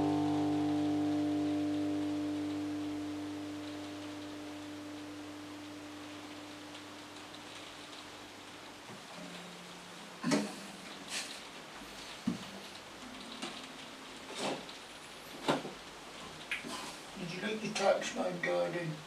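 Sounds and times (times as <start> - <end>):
soft low tone: 0.0 - 10.9
acoustic guitar chord ringing: 0.0 - 11.1
faint hiss: 0.0 - 19.0.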